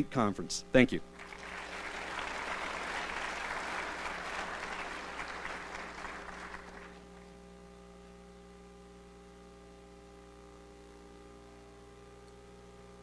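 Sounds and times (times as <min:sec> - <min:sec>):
low mains hum: 0:00.0 - 0:13.0
audience applauding: 0:01.2 - 0:07.0.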